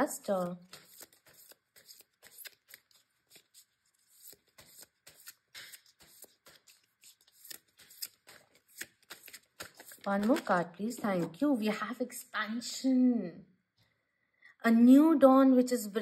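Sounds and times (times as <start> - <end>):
cards being shuffled: 0.3 - 11.4.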